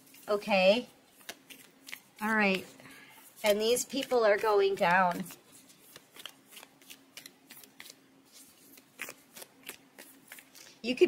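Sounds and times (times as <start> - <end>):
cards being shuffled: 0.0 - 10.8
woman speaking: 0.2 - 0.9, 2.2 - 2.8, 3.4 - 5.4.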